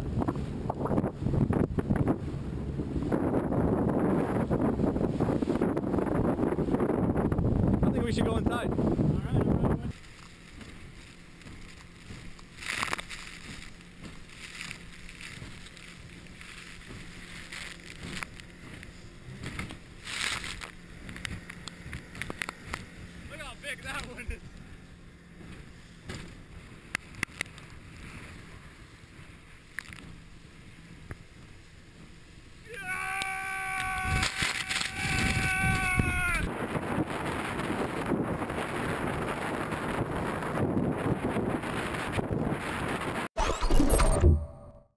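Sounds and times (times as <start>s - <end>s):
water noise: 0.0s - 40.5s, 41.6s - 44.9s
boat engine hum: 0.0s - 44.9s
wind: 0.0s - 44.9s.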